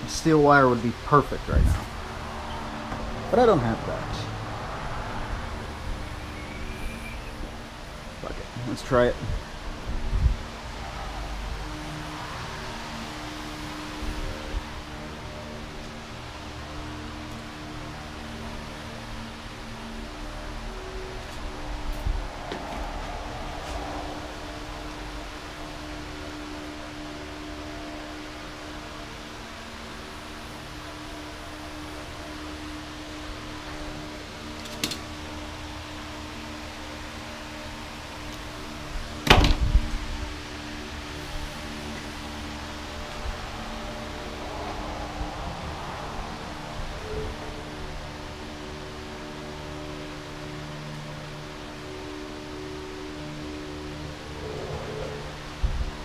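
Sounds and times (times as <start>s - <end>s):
soft ambient music: 0.0s - 56.0s
handling wire and small parts: 34.5s - 35.1s.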